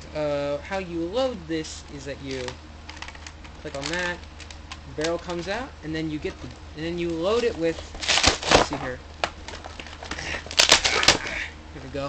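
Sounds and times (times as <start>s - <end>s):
plastic packaging crinkling: 2.3s - 5.5s, 7.1s - 11.3s.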